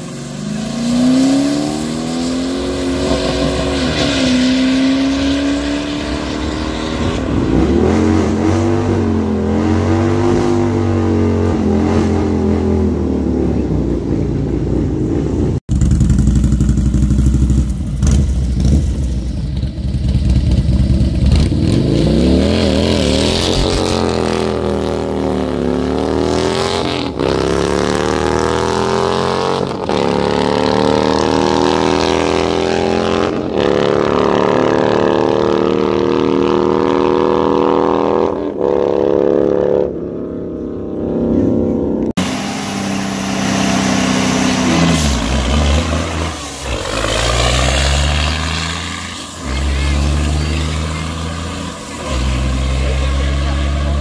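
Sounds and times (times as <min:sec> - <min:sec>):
motorcycle revving and launching: 0:00.0 - 0:40.3, 0:40.9 - 0:54.0
car engine at full throttle: 0:00.0 - 0:54.0.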